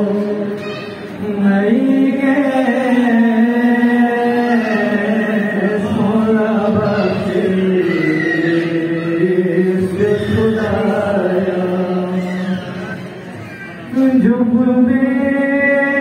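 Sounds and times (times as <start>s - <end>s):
person chanting: 0.0s - 13.2s, 13.9s - 16.0s.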